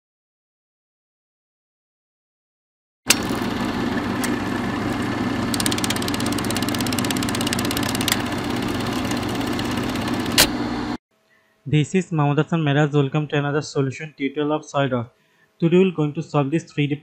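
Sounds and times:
mechanical engine-like sound: 3.1s - 11.0s
rapid even ticking: 5.5s - 10.4s
sharp clicks: 5.5s - 10.5s.

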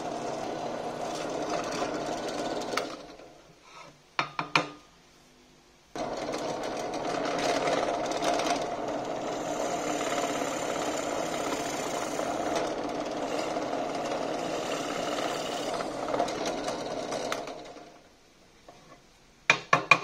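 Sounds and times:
drill press boring into wood: 0.0s - 3.3s, 6.0s - 18.1s.

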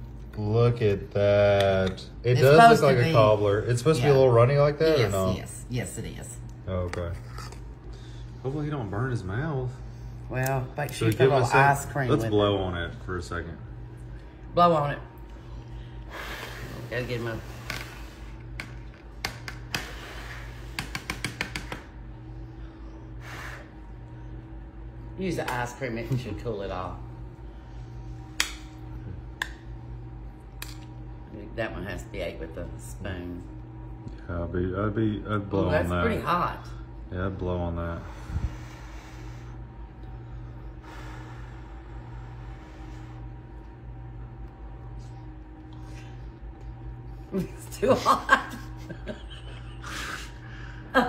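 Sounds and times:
steady low hum: 0.0s - 51.0s
breathy puff: 16.1s - 18.4s, 19.7s - 21.0s.

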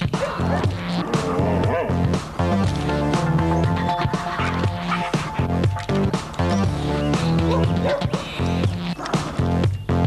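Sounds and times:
upbeat advert music: 0.0s - 10.0s.

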